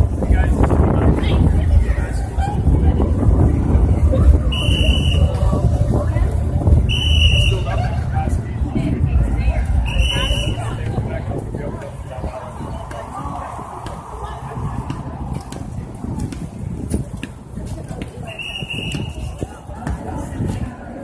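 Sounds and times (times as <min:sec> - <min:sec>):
crowd voices: 0:00.0 - 0:21.0
traffic noise: 0:00.0 - 0:21.0.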